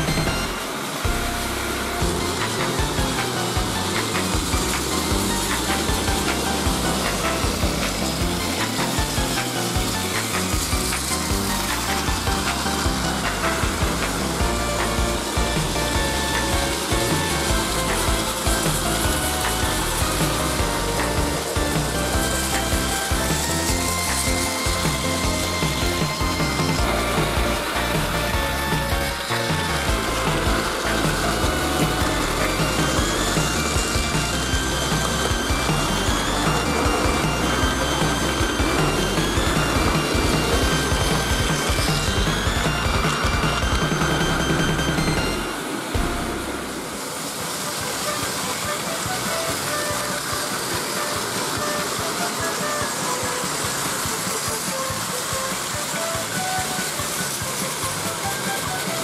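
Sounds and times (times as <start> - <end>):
wheels rattling on plastic track: 0.0 - 46.1, 46.9 - 59.0
background music: 0.0 - 59.0
toy trains whirring on track: 0.0 - 59.0.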